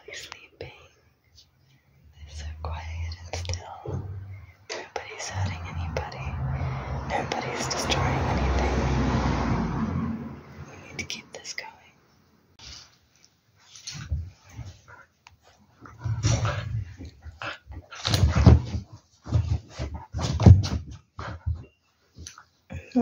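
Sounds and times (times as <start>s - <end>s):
rush of noise: 5.4s - 10.8s.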